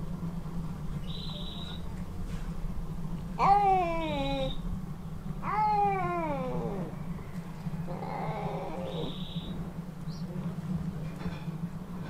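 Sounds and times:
cat meowing: 3.4 - 4.6, 5.4 - 7.0, 7.8 - 9.2.

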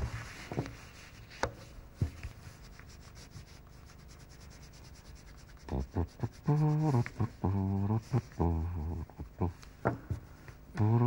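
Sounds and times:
crayon scratching on paper: 2.0 - 8.4
knock on table: 9.8 - 10.2.

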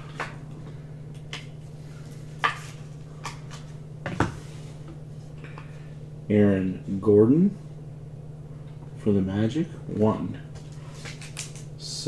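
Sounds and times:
steady low hum: 0.0 - 12.0
trading cards clicking: 10.6 - 11.7.

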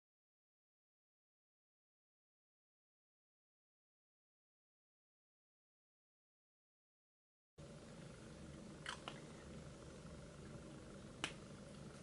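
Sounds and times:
low room hum: 7.6 - 12.0.

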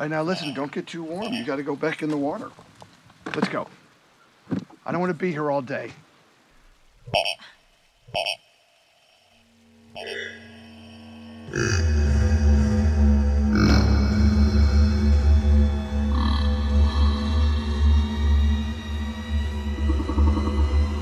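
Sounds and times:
droning horror film score: 8.6 - 21.0.

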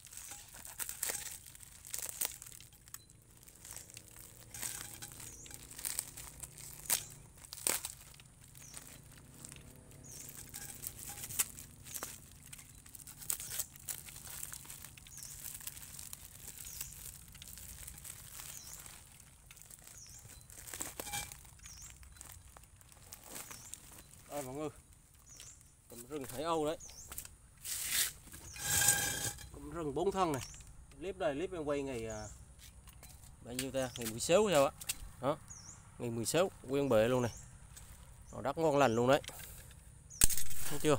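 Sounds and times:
plastic and paper crinkling: 0.0 - 30.6, 39.3 - 40.9.

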